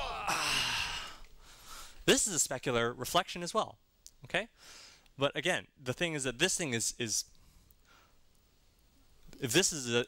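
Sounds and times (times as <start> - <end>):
man sighing: 0.0 - 1.4.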